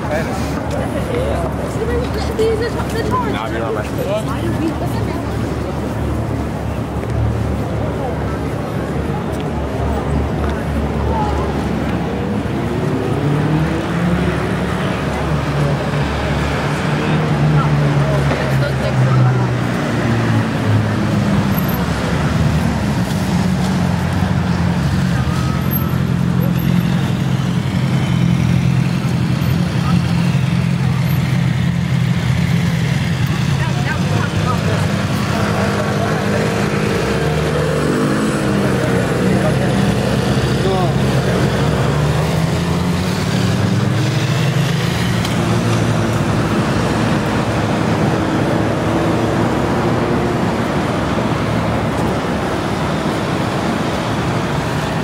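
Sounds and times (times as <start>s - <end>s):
people talking: 0.0s - 48.6s
street traffic: 0.0s - 55.0s.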